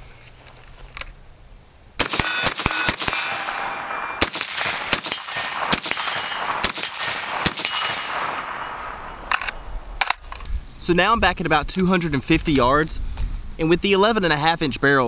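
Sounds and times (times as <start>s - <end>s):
suppressed rifle shots: 2.0s - 10.4s.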